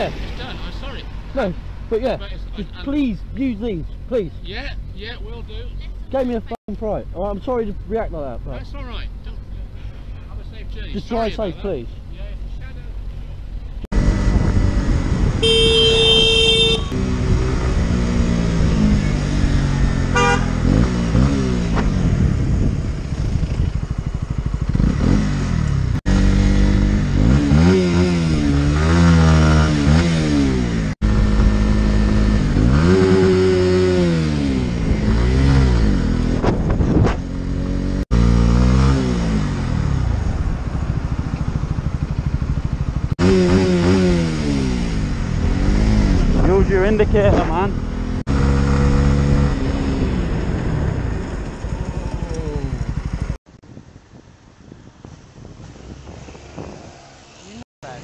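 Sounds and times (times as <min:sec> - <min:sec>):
motorcycle engine shifting gears: 0:13.8 - 0:54.2
wind rush: 0:13.9 - 0:15.5, 0:21.8 - 0:24.2, 0:34.6 - 0:37.4, 0:49.3 - 0:57.6
horn: 0:15.4 - 0:17.0, 0:20.1 - 0:20.8.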